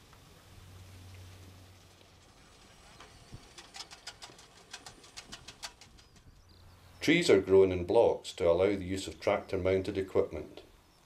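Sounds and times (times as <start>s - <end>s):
birds chirping: 0.0s - 11.0s
quiet field ambience: 0.0s - 11.0s.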